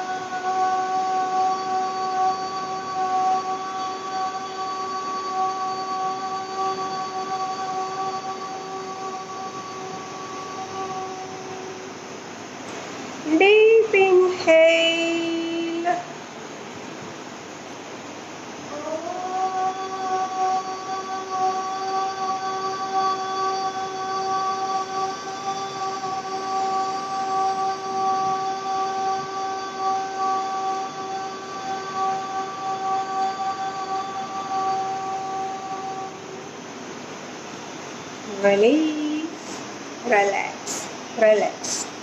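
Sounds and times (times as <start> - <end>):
woman chanting long steady note: 0.0 - 16.6, 18.2 - 42.0.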